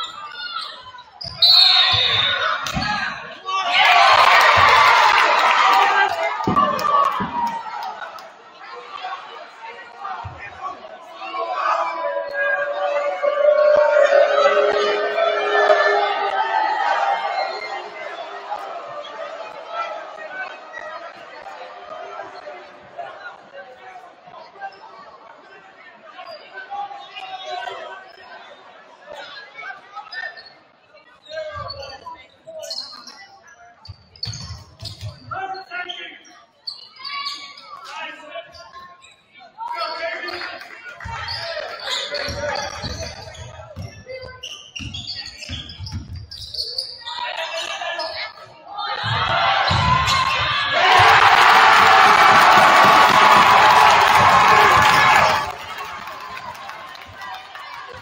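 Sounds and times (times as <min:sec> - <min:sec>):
shoe squeaks: 0:00.0 - 0:02.9, 0:30.1 - 0:39.4, 0:41.2 - 0:48.4
crowd chattering: 0:00.0 - 0:58.0.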